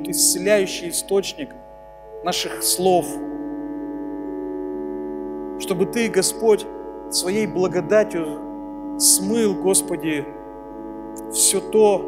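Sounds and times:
low keyboard note: 0.0 - 12.0
soft sustained keyboard chord: 0.0 - 12.0.

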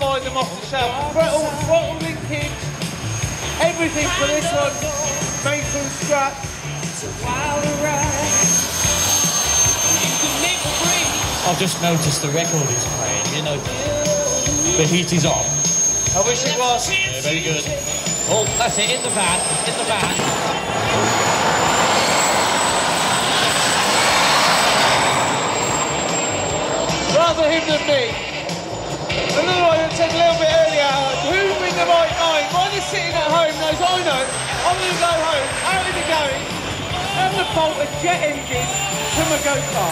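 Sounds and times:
music over loudspeaker: 0.0 - 9.5, 27.0 - 39.9
jet engine whine: 0.0 - 39.9.

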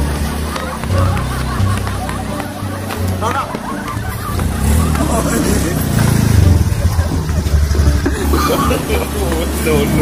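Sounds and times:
motor scooter engine running: 0.0 - 10.0
voices talking: 0.0 - 10.0.

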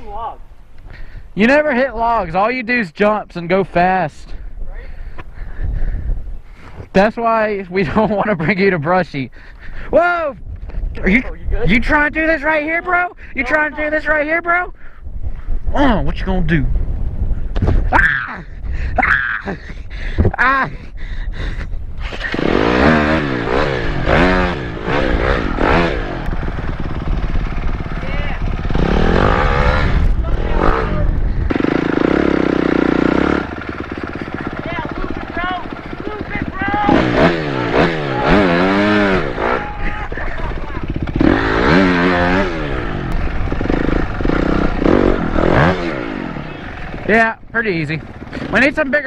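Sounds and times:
dirt bike engine revving: 22.0 - 49.0.

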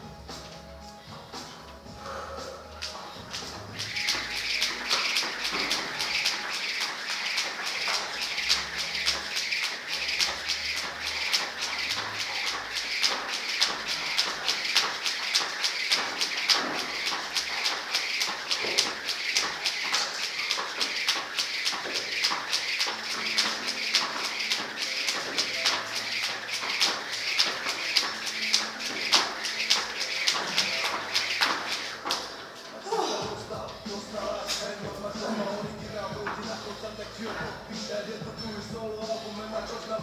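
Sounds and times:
jump rope whirring and slapping: 2.8 - 33.8, 34.4 - 36.7.

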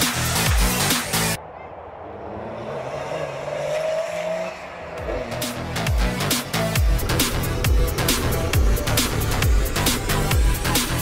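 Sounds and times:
rally car engine accelerating: 2.0 - 11.0.

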